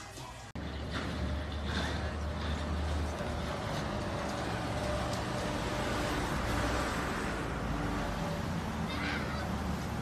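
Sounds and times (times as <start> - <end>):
city street traffic: 0.0 - 10.0
low engine rumble: 0.6 - 10.0.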